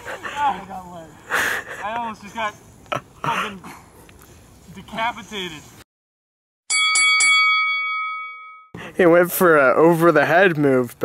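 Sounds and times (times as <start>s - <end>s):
bell struck and ringing: 6.7s - 8.8s.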